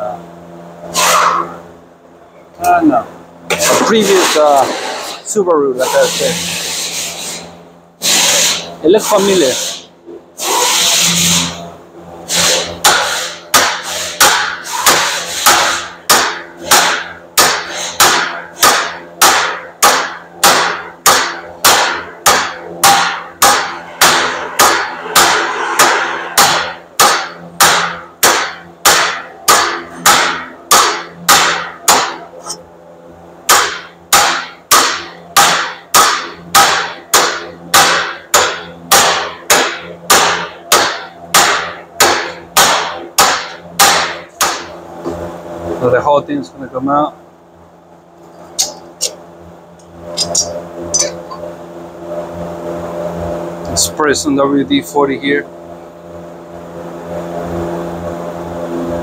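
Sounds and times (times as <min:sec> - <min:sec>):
hammer blows ringing on metal: 0:12.4 - 0:32.3, 0:33.5 - 0:44.8.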